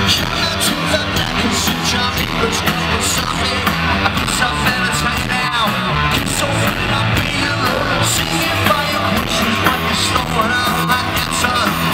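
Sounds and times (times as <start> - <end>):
drums: 0.0 - 11.9
electric guitar: 0.0 - 11.9
person singing: 0.0 - 11.9
rock band playing live: 0.0 - 11.9.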